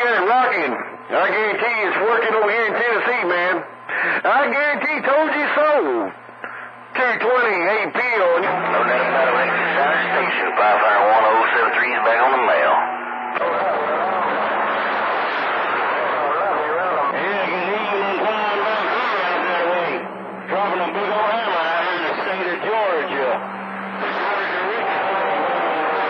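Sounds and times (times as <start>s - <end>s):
distorted radio voices: 0.0s - 26.0s.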